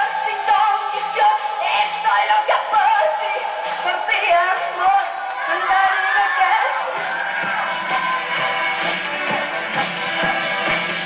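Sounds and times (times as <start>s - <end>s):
woman singing pop song: 0.0s - 11.0s
band accompaniment: 7.0s - 11.0s.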